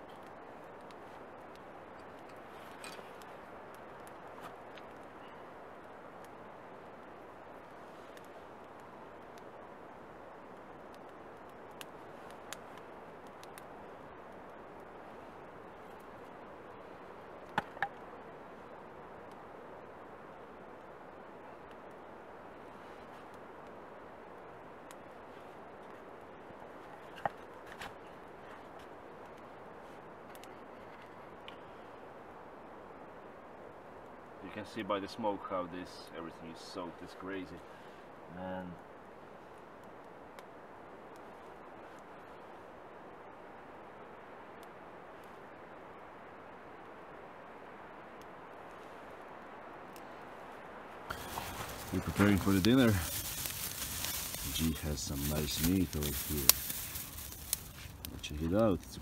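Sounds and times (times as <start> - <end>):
campfire hissing and crackling: 0.0 - 59.0.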